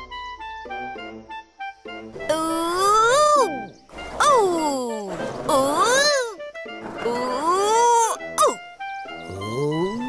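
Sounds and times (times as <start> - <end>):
light children's music: 0.0 - 10.0
cartoon character high-pitched whoops: 2.3 - 3.5, 5.6 - 6.4, 7.3 - 8.6.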